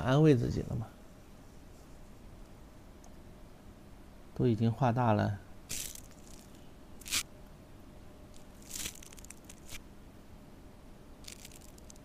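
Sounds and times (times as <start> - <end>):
scraping and rustling: 8.4 - 9.8.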